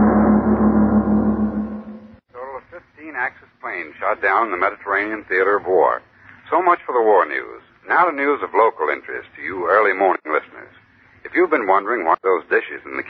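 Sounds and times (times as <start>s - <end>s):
person talking on old recording: 2.3s - 13.0s.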